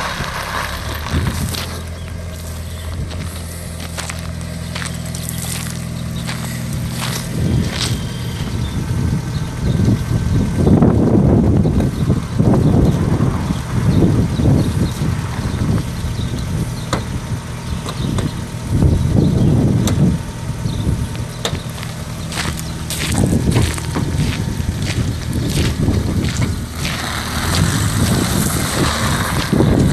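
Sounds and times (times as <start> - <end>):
car engine idling: 0.0 - 29.9.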